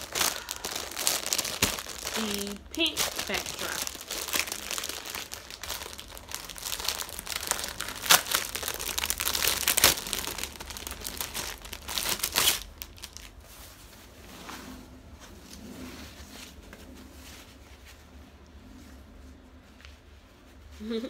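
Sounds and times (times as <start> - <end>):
plastic bag crinkling: 0.0 - 13.4.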